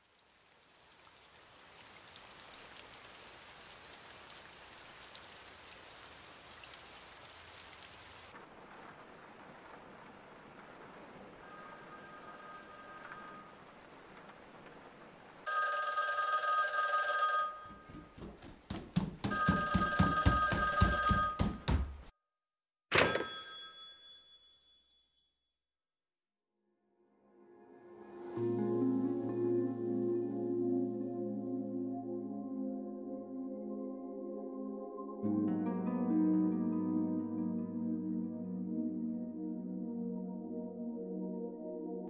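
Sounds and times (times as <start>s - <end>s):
steady rain falling: 0.0s - 21.8s, 28.0s - 31.1s
telephone bell ringing: 11.4s - 13.5s, 15.5s - 17.9s, 19.3s - 21.7s, 22.9s - 25.2s.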